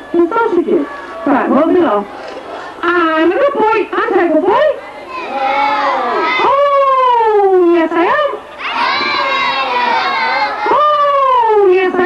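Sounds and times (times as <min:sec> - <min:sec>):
children shouting and cheering: 0:05.0 - 0:07.2, 0:08.5 - 0:11.5.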